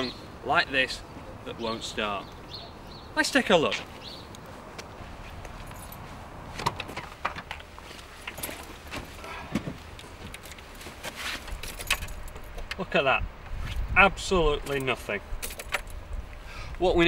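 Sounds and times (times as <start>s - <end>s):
keys jangling: 5.6s - 6.1s, 11.6s - 12.6s, 14.8s - 16.0s.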